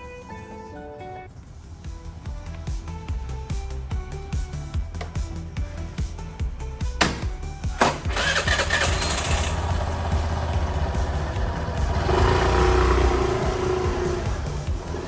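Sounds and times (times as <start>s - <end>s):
background music: 0.0s - 15.0s
scooter engine revving: 7.9s - 15.0s.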